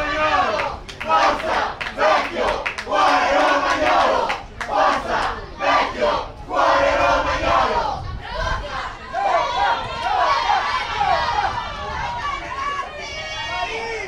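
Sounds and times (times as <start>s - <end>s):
crowd shouting: 0.0s - 14.0s.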